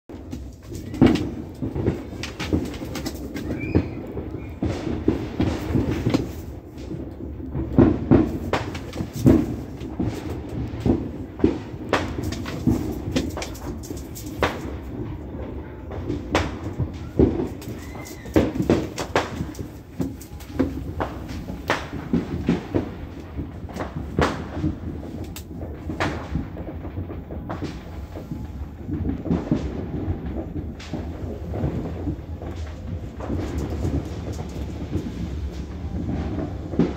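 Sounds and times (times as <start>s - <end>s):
low rumble of fireworks: 0.1s - 36.9s
sharp fireworks bangs: 0.1s - 36.9s.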